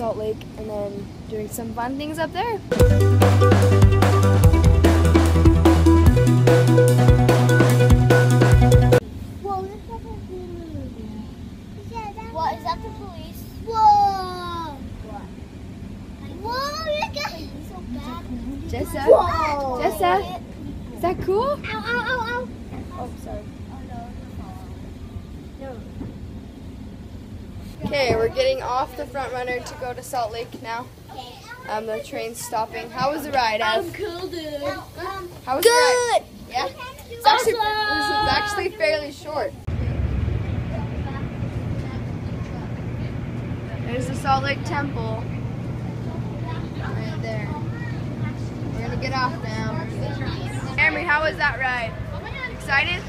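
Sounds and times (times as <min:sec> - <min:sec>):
train car rumble: 0:20.1 - 0:31.0, 0:37.8 - 0:53.0
child's high exclamation: 0:35.5 - 0:38.8
train rumble inside carriage: 0:39.7 - 0:50.7.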